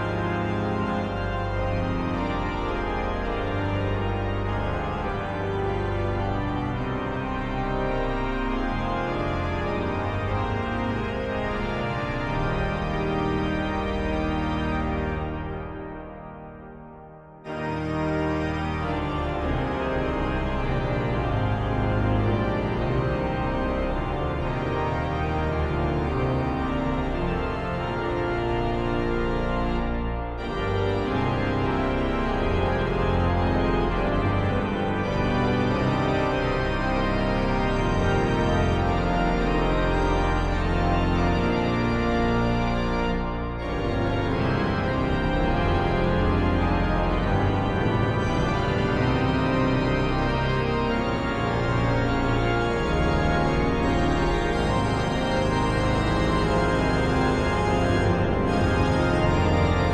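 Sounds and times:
pipe organ chords: 0:00.0 - 0:59.9.

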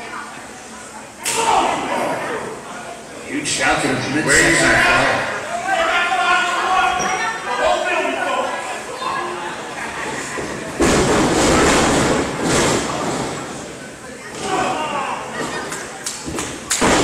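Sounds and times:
loud crash in wrestling ring: 0:10.8 - 0:13.4, 0:16.8 - 0:17.0.

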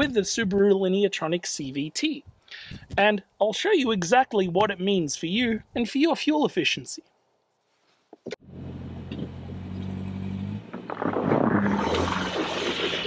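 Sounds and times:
car engine running: 0:08.4 - 0:11.2.

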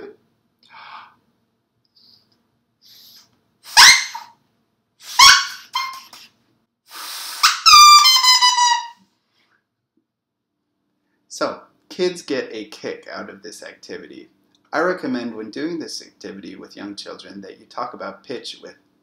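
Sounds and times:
drinking straw reed squeaking: 0:07.4 - 0:09.0.

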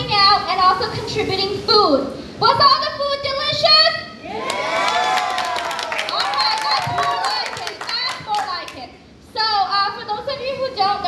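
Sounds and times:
voices cheering: 0:04.2 - 0:08.8
hand clapping: 0:05.4 - 0:08.8.

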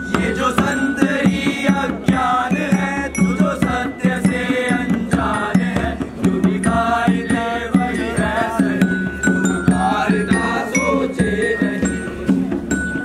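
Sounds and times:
voices singing chant-like melody: 0:00.0 - 0:12.7
short percussive beats: 0:00.0 - 0:13.0.

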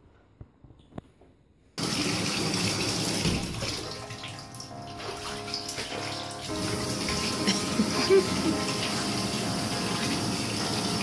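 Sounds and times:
water pouring into bathtub: 0:01.8 - 0:11.0.

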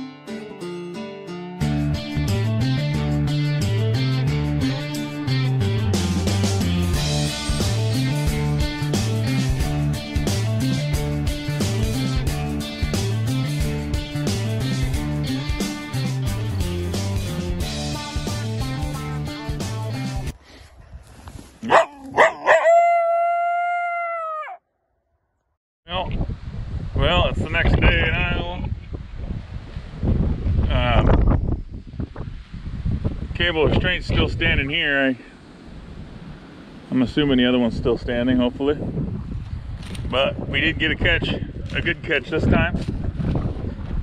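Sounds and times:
guitar music with steady beat: 0:00.0 - 0:20.3
dog howling: 0:21.7 - 0:24.6.

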